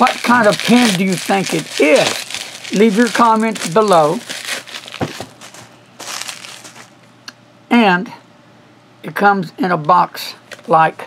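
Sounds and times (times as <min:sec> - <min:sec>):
bubble wrap crinkling: 0:00.0 - 0:07.0.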